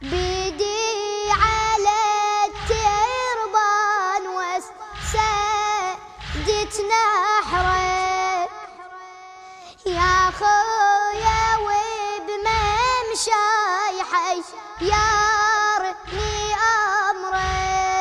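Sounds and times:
deep low beat: 0.0s - 3.5s, 4.9s - 8.3s, 9.9s - 13.6s, 14.8s - 18.0s
boy chanting: 0.0s - 18.0s.

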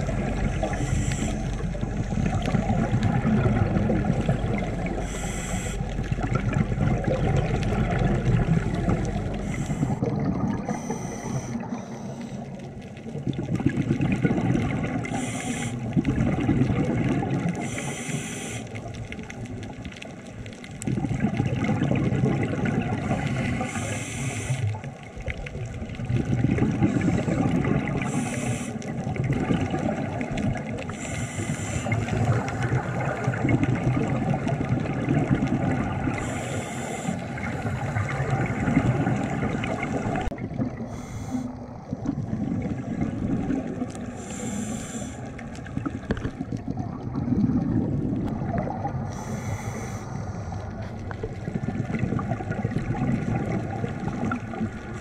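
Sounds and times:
bubbling exhalations underwater: 0.0s - 11.8s, 13.0s - 17.8s, 18.8s - 24.0s, 25.2s - 31.0s, 31.8s - 36.4s, 37.2s - 49.4s, 50.6s - 55.0s
hissing regulator inhalations: 0.4s - 1.6s, 5.0s - 6.0s, 9.4s - 10.0s, 10.7s - 12.6s, 15.1s - 15.9s, 17.6s - 18.8s, 23.2s - 24.8s, 26.8s - 29.0s, 30.9s - 32.8s, 36.1s - 38.3s, 40.8s - 41.6s, 44.0s - 45.5s, 49.1s - 50.7s.

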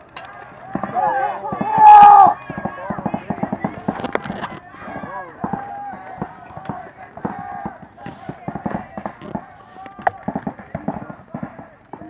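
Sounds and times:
paintball markers firing: 0.3s - 12.0s
person shouting: 1.0s - 2.4s.

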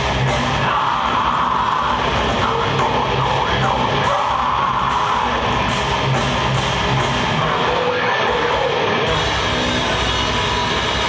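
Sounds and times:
bass guitar: 0.0s - 11.0s
distorted electric guitar: 0.0s - 11.0s
drums: 0.0s - 11.0s.

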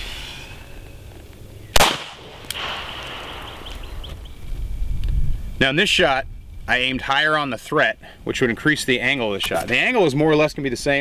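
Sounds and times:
pistol shot: 1.8s - 3.7s.

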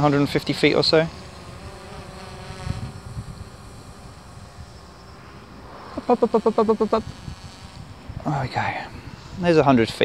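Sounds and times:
quadcopter motors humming: 0.0s - 9.4s.

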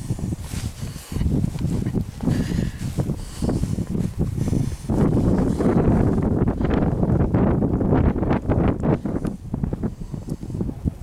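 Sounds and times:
wind buffeting microphone: 0.0s - 11.0s.

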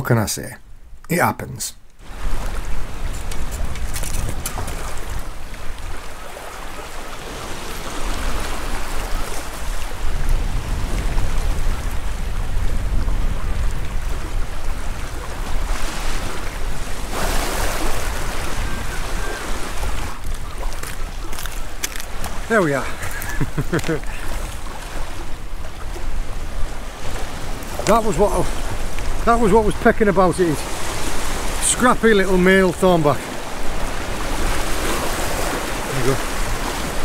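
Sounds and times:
wind buffeting microphone: 2.0s - 32.4s
sea waves on rocks: 2.0s - 37.0s.

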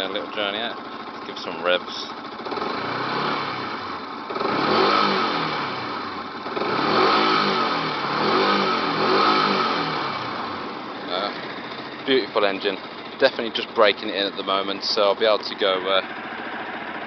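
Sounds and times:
motorcycle engine idling and revving: 0.0s - 17.0s.

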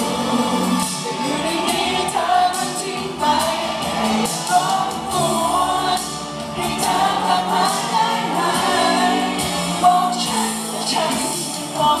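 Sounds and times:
man singing into microphone: 0.0s - 7.6s, 9.8s - 12.0s
pop music accompaniment: 0.0s - 12.0s.

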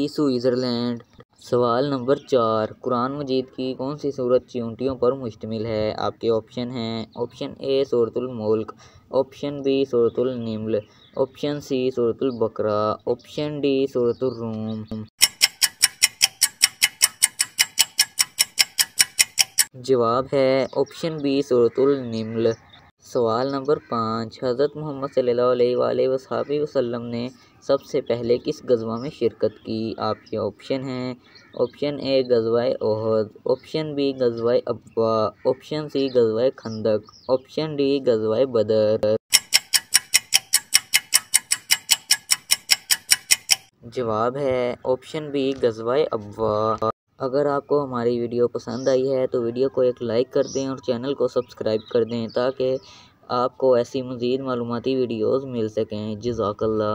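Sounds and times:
rapid clock ticking: 15.2s - 19.7s, 39.3s - 43.7s.

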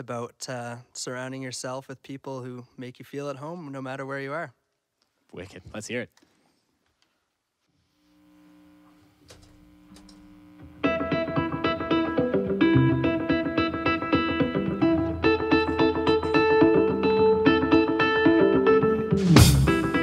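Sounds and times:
electric guitar and bass chords: 10.4s - 20.0s.

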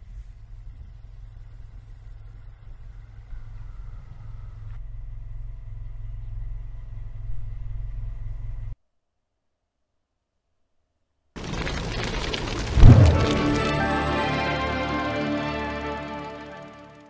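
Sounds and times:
steady low rumble: 11.4s - 13.8s.

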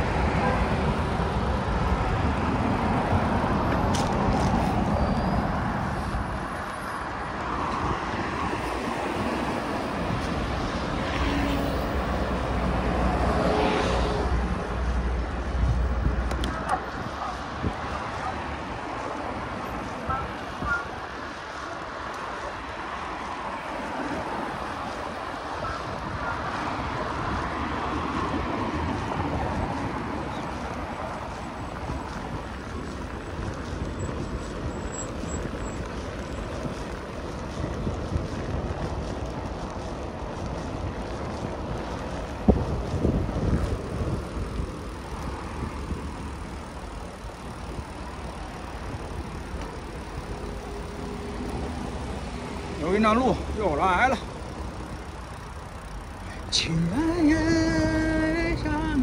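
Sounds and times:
road traffic passing: 0.0s - 59.0s
wind rumbling on microphone: 0.0s - 59.0s.

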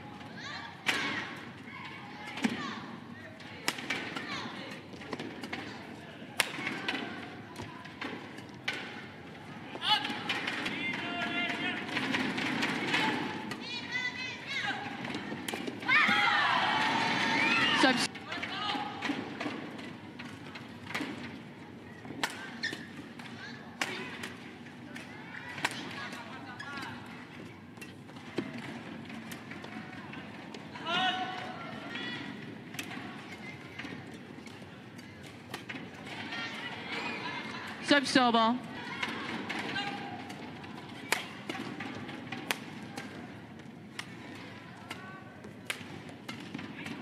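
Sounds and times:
arena crowd noise: 0.0s - 47.0s
racket hitting shuttlecock: 6.4s - 7.1s, 22.2s - 26.2s, 39.0s - 43.3s, 43.9s - 47.0s
shoes squeaking on court: 21.9s - 23.1s.

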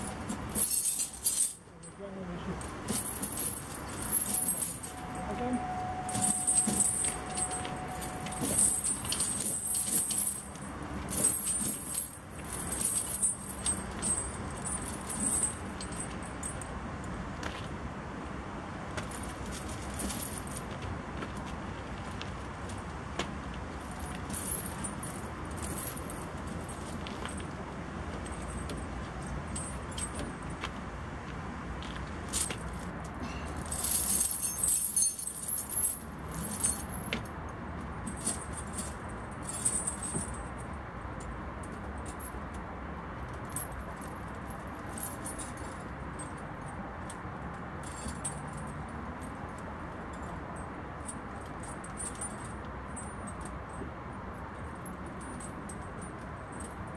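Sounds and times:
snow chains clinking and rattling: 0.0s - 2.0s, 2.6s - 16.6s, 19.1s - 20.8s, 23.8s - 27.6s, 32.2s - 37.3s, 38.0s - 40.6s
steady background noise: 0.0s - 56.9s.

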